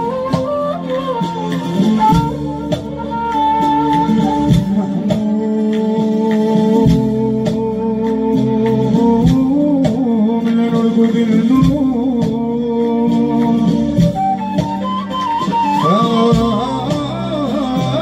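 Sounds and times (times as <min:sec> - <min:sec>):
light regular beats: 0:00.0 - 0:18.0
person singing melody: 0:00.0 - 0:18.0.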